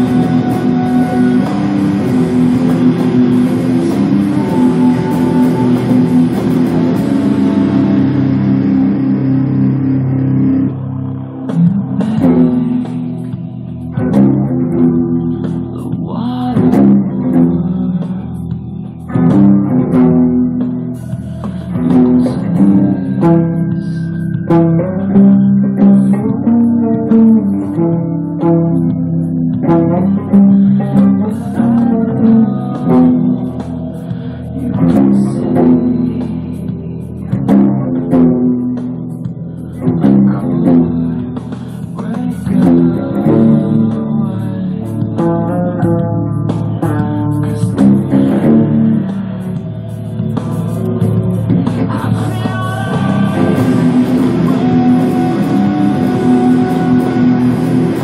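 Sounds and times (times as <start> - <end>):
electric guitar chord ringing: 0.0 - 58.0.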